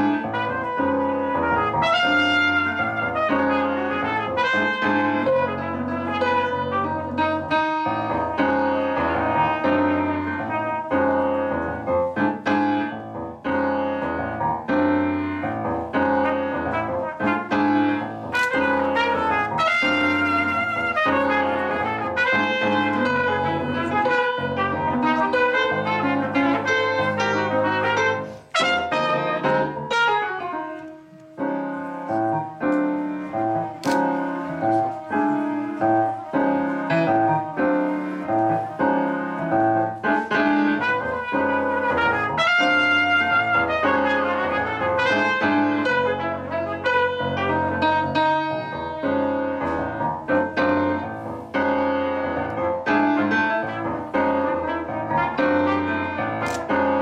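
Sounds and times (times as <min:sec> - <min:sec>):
trumpet holding long notes: 0:00.0 - 0:07.5, 0:08.3 - 0:11.6, 0:16.2 - 0:30.5, 0:40.5 - 0:48.1
grand piano chords: 0:00.0 - 0:57.0.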